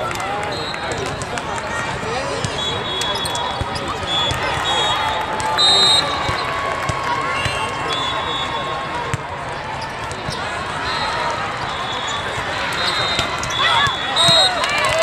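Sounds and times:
crowd chatter: 0:00.0 - 0:15.0
sneakers squeaking on court: 0:02.4 - 0:04.8, 0:09.1 - 0:10.6
referee whistle blast: 0:02.4 - 0:06.5, 0:07.4 - 0:09.0, 0:10.8 - 0:14.7.

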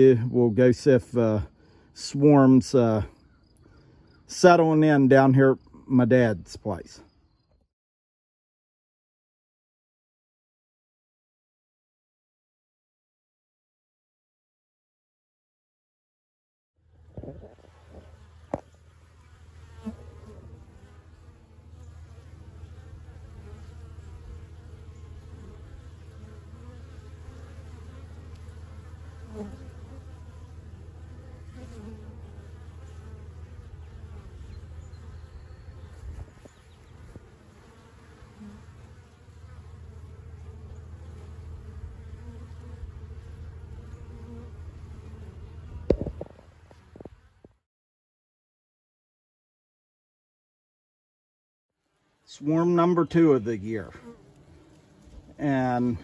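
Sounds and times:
honeybees buzzing: 0:16.9 - 0:47.6, 0:51.9 - 0:56.0.

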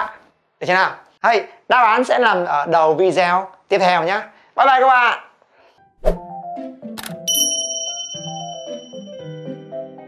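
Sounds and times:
light background music: 0:05.8 - 0:10.0
bell-like ding: 0:07.3 - 0:09.8.

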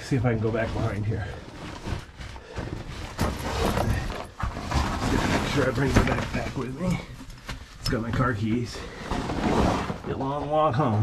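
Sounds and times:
clothing scraping on rock: 0:00.0 - 0:10.7.

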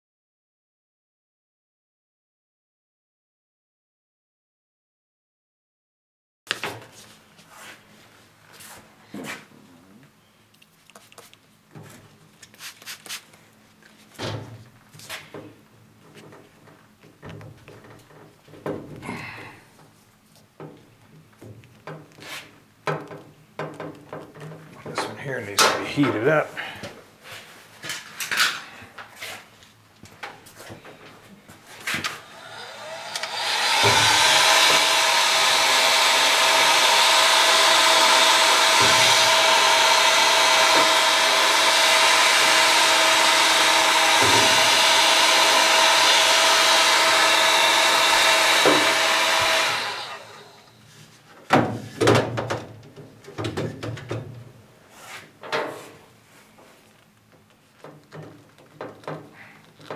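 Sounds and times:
handling knocks and clicks: 0:22.8 - 0:26.2, 0:57.0 - 0:59.9
heat gun whine and rushing air: 0:32.0 - 0:50.8.

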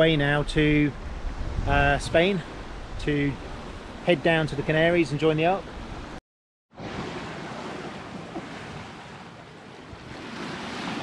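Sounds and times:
wind buffeting microphone: 0:00.0 - 0:05.0
sea water rushing: 0:00.0 - 0:06.2, 0:06.8 - 0:11.0.

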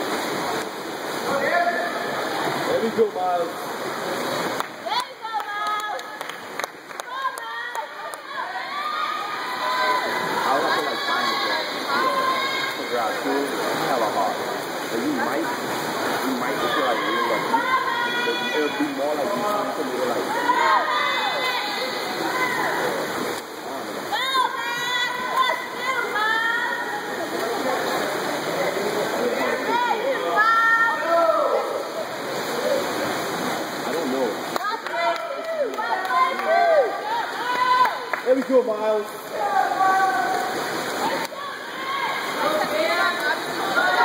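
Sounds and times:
swimmers splashing: 0:00.0 - 0:44.0
spectators' voices and shouts: 0:00.7 - 0:44.0
spectators shouting: 0:07.1 - 0:13.0, 0:20.2 - 0:23.0, 0:34.6 - 0:38.1, 0:39.3 - 0:44.0.

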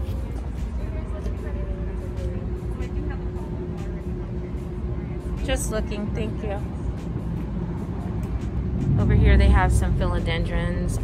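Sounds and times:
faint constant hum: 0:00.0 - 0:11.0
low rumble: 0:00.8 - 0:11.0.

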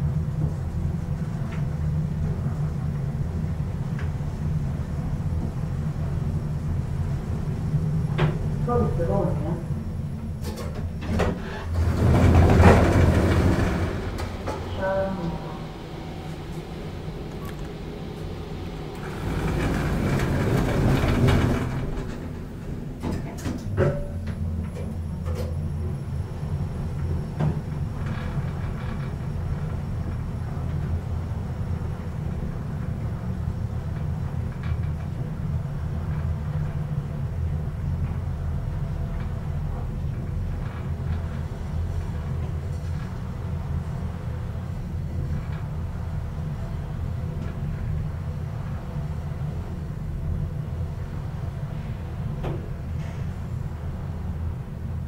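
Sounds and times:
elevator doors sliding: 0:00.0 - 0:55.0
elevator low hum: 0:00.0 - 0:55.0.

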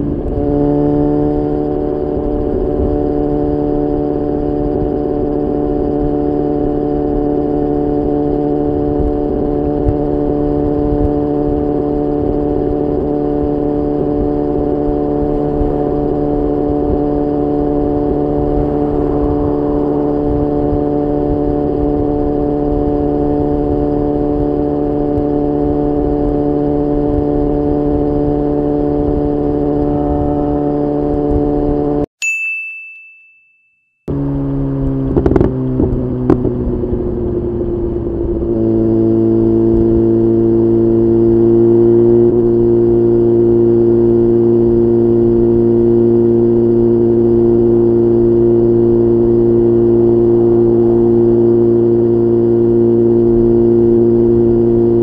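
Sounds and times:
motorcycle engine cruising: 0:00.0 - 0:32.1, 0:34.1 - 0:55.0
wind and road noise: 0:00.0 - 0:32.1, 0:34.1 - 0:55.0
high ding chime: 0:32.2 - 0:34.0.

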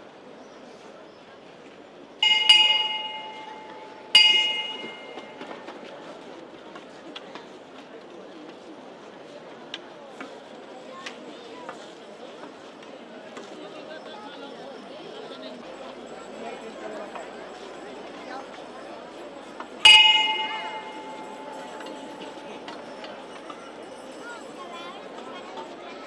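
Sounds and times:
crowd murmur: 0:00.0 - 0:26.0
bell struck: 0:02.2 - 0:05.4, 0:19.8 - 0:23.1.

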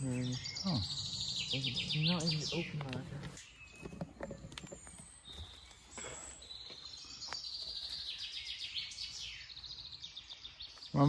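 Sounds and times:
songbirds singing: 0:00.0 - 0:11.0.

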